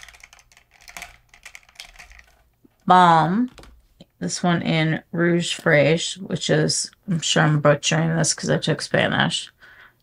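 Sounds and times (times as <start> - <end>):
plastic packaging clicks and taps: 0.0 - 2.4.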